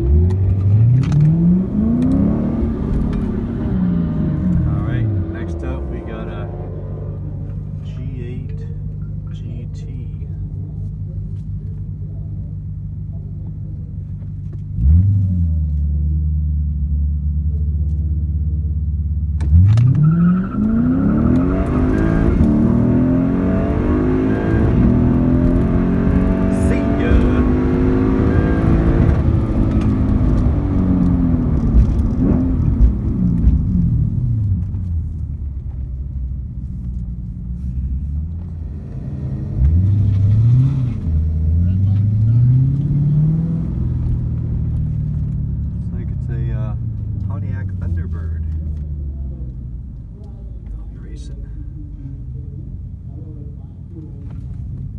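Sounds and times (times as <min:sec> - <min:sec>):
car engine accelerating hard: 0:00.0 - 0:09.4, 0:13.4 - 0:54.9.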